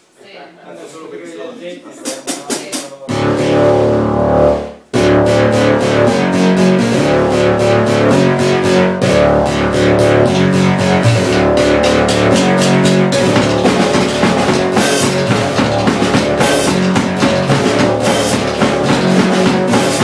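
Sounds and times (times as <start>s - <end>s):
fast hi-hat beat: 2.0s - 20.0s
sustained synth chord with deep bass: 3.1s - 14.7s
bass and keyboard: 3.1s - 20.0s.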